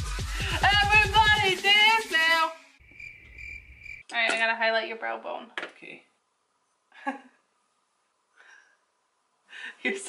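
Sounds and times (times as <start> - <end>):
electronic dance music with singing: 0.0 - 2.7
faint cricket chirping: 2.8 - 4.1.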